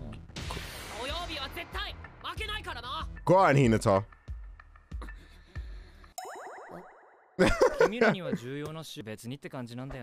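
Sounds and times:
soft background music: 1.1s - 6.6s.

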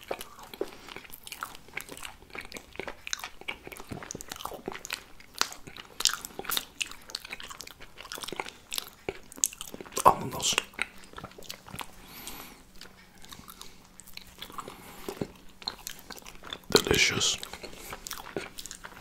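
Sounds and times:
chewing gingerbread crunches: 0.0s - 19.0s.

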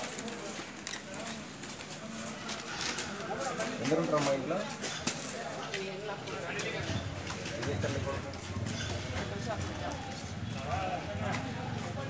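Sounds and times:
people talking in background: 0.0s - 12.0s.

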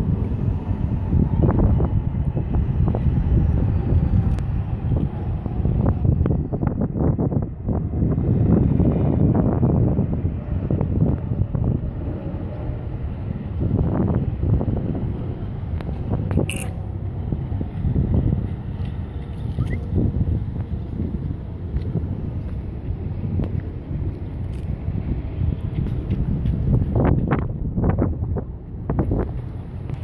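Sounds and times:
wind gusting on microphone: 0.0s - 30.0s.

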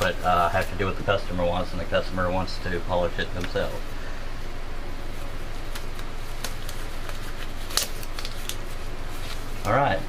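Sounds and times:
disposable gloves rustling: 0.0s - 4.1s, 4.9s - 9.9s
low background hum: 0.0s - 10.0s.

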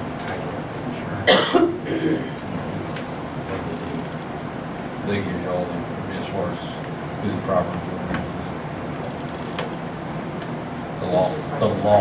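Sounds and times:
person coughing: 1.2s - 2.4s.

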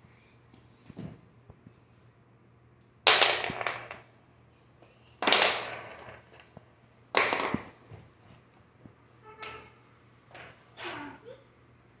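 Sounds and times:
marbles clattering on hard floor: 3.0s - 4.1s, 5.2s - 7.8s.

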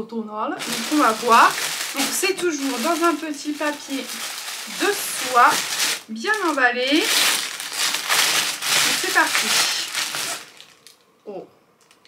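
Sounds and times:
tissue paper rustling: 0.6s - 10.9s.

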